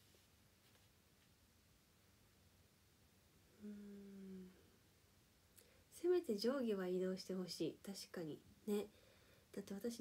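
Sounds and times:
woman humming: 3.5 - 4.8.

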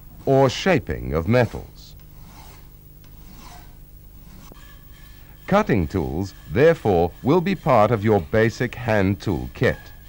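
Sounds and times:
metal file scraping metal: 0.2 - 10.0.

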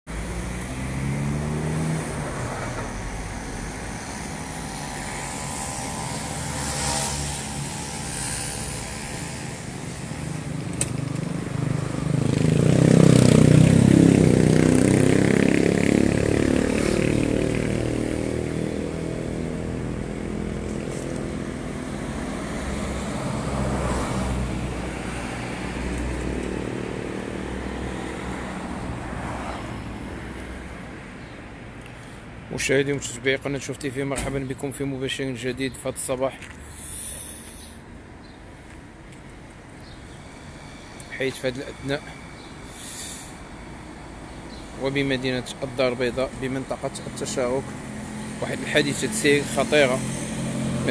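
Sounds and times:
vehicles driving past: 0.1 - 50.9
heavy vehicle passing: 0.2 - 10.6, 11.4 - 31.1.

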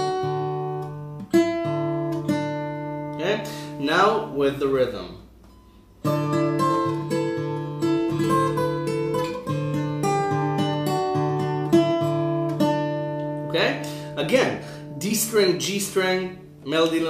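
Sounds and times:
fingerstyle acoustic guitar: 0.0 - 4.3, 5.4 - 17.0.

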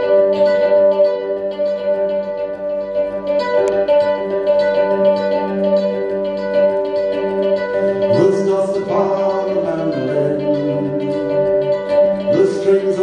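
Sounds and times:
plucked string instrument melody: 0.0 - 13.0.

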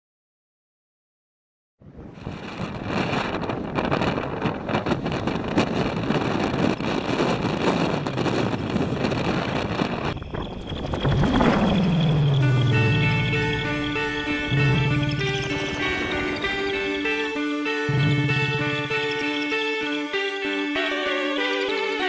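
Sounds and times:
wind buffeting microphone: 1.8 - 17.1
music: 11.1 - 22.0.

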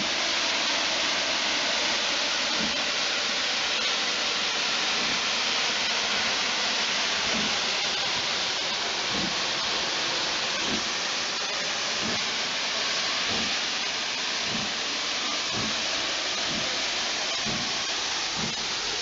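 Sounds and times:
steam locomotive hissing: 0.0 - 19.0.

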